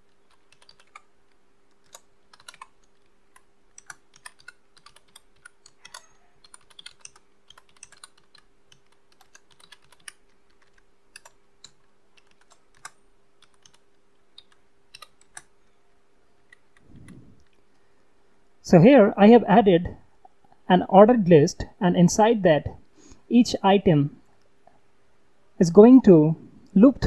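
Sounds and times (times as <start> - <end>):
keyboard typing: 0.0 - 15.8
faint steady hum: 0.0 - 27.0.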